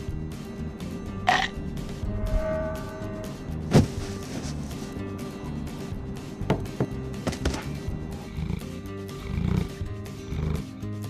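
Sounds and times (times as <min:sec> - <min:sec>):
background music: 0:00.0 - 0:11.0
held steady tone: 0:01.2 - 0:05.6.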